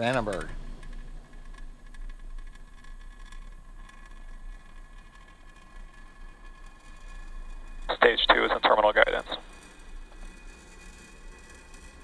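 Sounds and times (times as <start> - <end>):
rocket engine rumble and hiss: 7.9 - 9.4.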